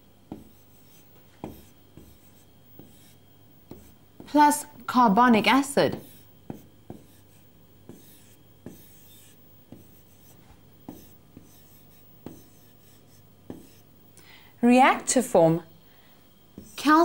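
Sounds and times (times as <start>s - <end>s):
marker tip tapping board: 0.3s - 0.6s, 5.9s - 7.2s, 9.7s - 10.0s, 10.9s - 12.7s, 13.5s - 13.8s
marker pen strokes on board: 0.3s - 4.3s, 5.9s - 13.9s, 16.6s - 17.0s.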